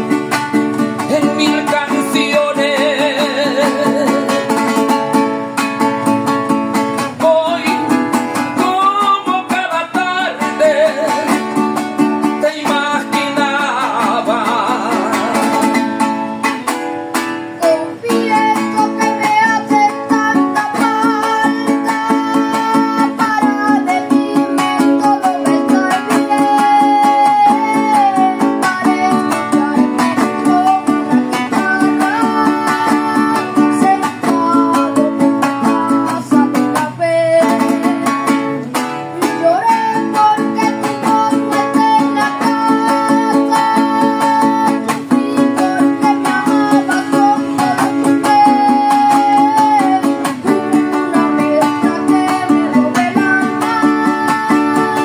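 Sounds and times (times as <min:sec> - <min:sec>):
boy singing: 0:00.0 - 0:05.6, 0:06.7 - 0:55.0
fast strummed cuatro: 0:00.0 - 0:55.0.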